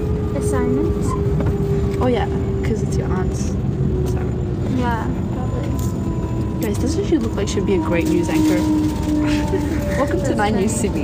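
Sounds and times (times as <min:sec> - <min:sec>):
thin steady whine: 0:00.0 - 0:11.0
train rumble inside carriage: 0:00.0 - 0:11.0.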